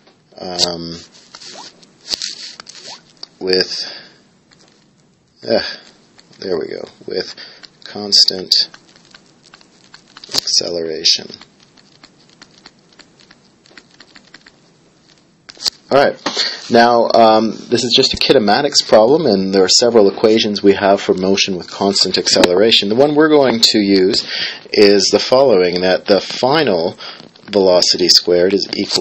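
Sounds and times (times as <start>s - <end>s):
stylus scratching on tablet screen: 0.9s - 3.2s, 5.5s - 15.8s.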